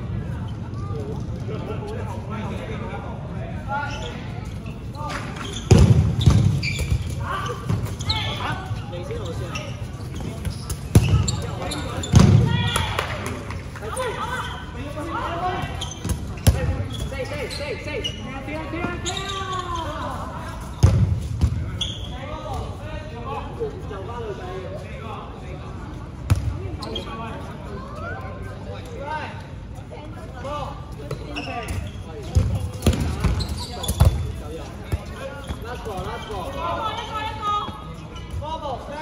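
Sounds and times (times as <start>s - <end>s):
dodgeballs smacking: 5.6s - 8.0s, 10.4s - 13.5s, 20.8s - 21.8s, 31.1s - 36.1s.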